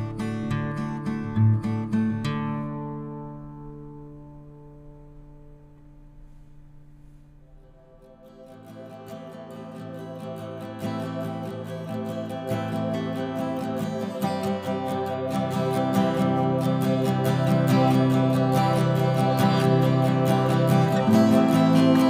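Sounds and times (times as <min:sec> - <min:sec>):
plucked acoustic guitar: 0:00.0 - 0:22.0.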